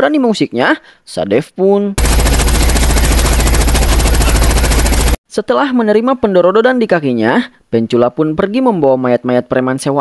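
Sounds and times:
rapid automatic gunfire: 0:02.0 - 0:05.2.

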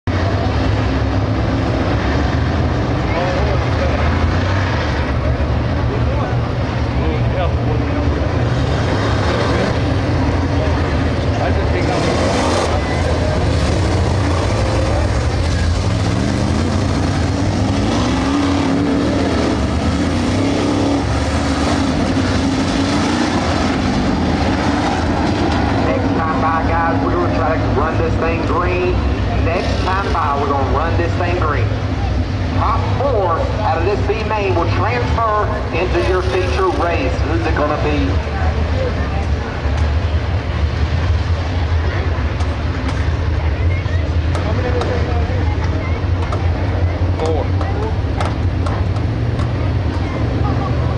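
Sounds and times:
race car engines droning: 0:00.0 - 0:50.9.

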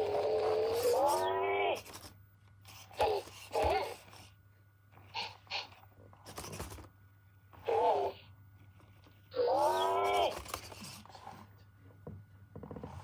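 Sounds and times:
robot pet synthesized animal calls: 0:09.4 - 0:10.3.

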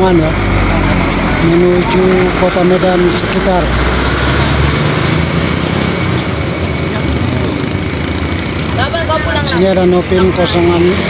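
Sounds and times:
roadside traffic noise: 0:00.0 - 0:11.0
vehicle engines running: 0:00.0 - 0:11.0.

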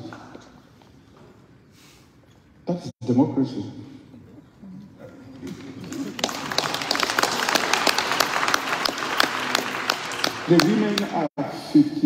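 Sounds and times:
audience applauding: 0:05.5 - 0:11.3.

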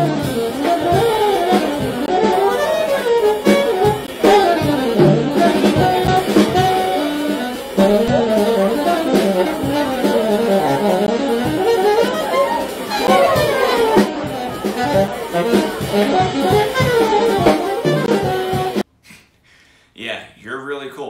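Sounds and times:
upright bass: 0:00.0 - 0:18.8
saxophone jazz solo: 0:00.0 - 0:18.9
drums: 0:00.0 - 0:19.4.

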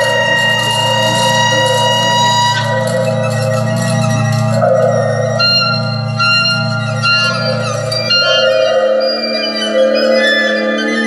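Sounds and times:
high ringing tones: 0:00.0 - 0:11.0
low drone: 0:00.0 - 0:11.0.

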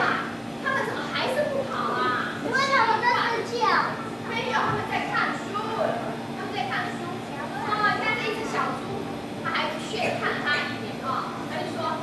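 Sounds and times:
young children's voices: 0:00.0 - 0:12.0.

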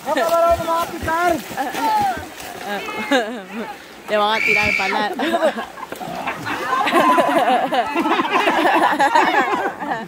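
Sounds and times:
people shouting and calling out: 0:00.0 - 0:05.4.

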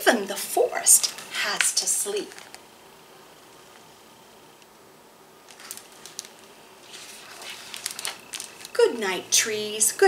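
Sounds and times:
book page turning: 0:05.4 - 0:08.8.

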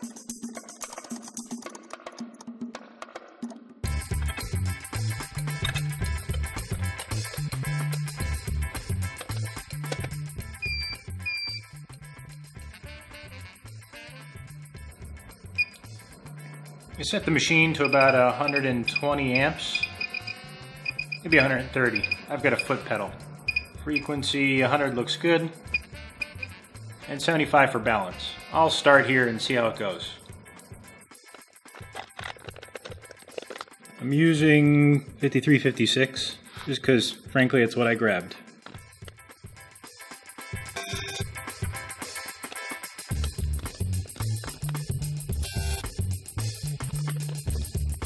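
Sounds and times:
bass and drums music: 0:03.8 - 0:37.5, 0:38.8 - 0:48.0.

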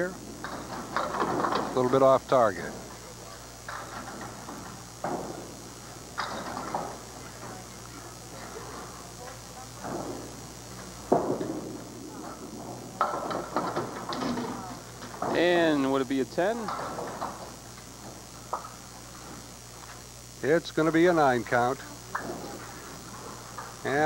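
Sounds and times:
faint voices: 0:00.0 - 0:24.0
bowling knocks: 0:03.6 - 0:08.0, 0:09.8 - 0:15.6, 0:16.4 - 0:19.5.

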